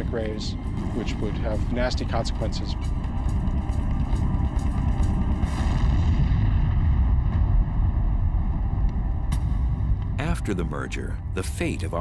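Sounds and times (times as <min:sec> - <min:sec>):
deep cinematic rumble: 0:00.0 - 0:12.0.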